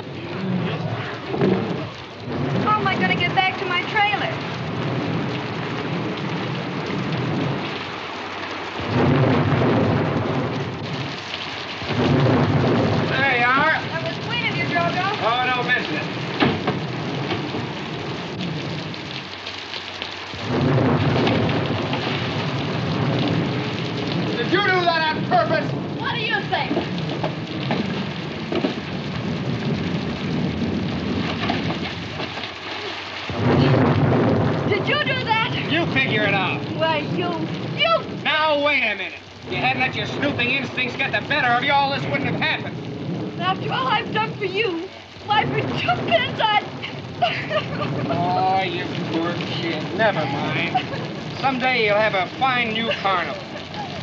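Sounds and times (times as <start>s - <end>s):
heavy rain: 0.0s - 54.0s
rolling thunder: 0.0s - 54.0s.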